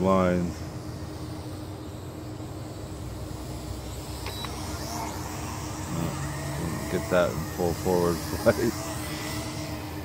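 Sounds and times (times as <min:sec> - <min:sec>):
quadcopter motors humming: 0:00.0 - 0:10.0.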